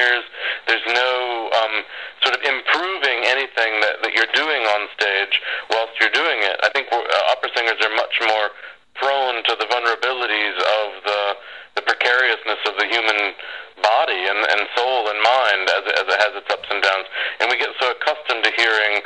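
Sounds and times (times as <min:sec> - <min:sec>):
man talking: 0:00.0 - 0:19.0.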